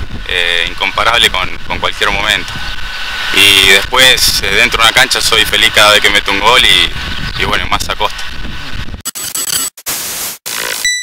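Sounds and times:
static-like hiss bursts: 0.0 - 11.0.

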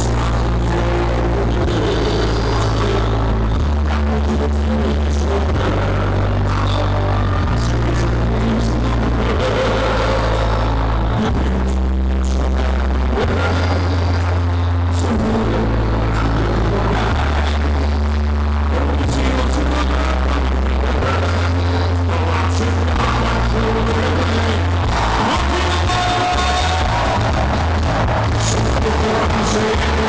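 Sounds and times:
deep bass line: 0.0 - 30.0
man singing into a microphone: 0.0 - 30.0.

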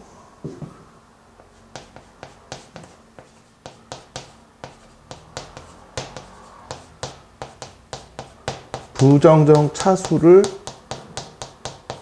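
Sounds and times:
chalk tapping and scraping: 1.4 - 12.0.

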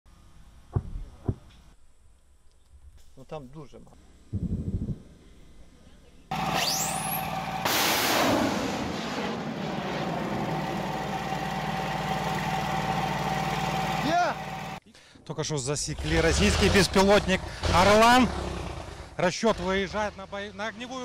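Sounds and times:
steady drone with held tone: 6.3 - 7.9
rising whistle: 6.4 - 8.4
rocket launch rushing burst: 6.5 - 10.9.

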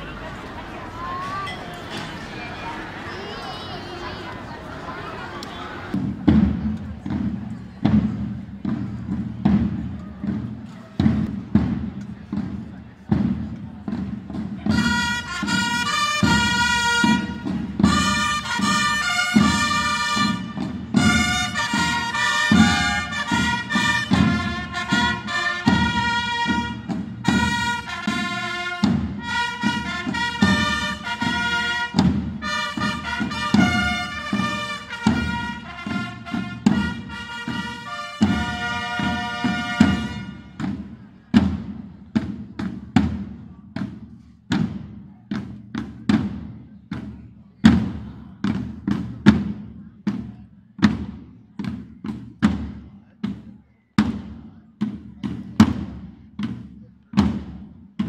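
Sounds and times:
drums beating march rhythm: 4.7 - 58.0
brass melody: 14.6 - 40.7.

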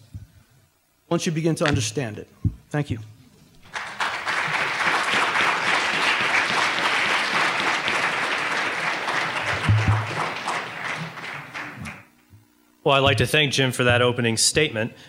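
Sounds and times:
audience applauding: 3.6 - 12.1.

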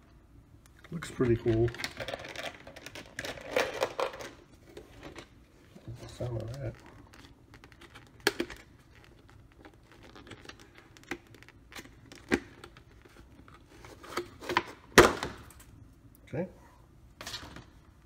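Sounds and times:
plastic packaging crinkling: 5.9 - 14.7.

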